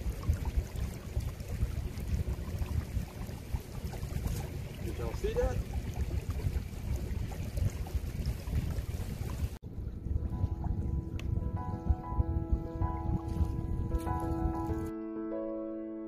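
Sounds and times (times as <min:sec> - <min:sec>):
wind buffeting microphone: 0:00.0 - 0:14.9
soft piano music: 0:09.7 - 0:16.0.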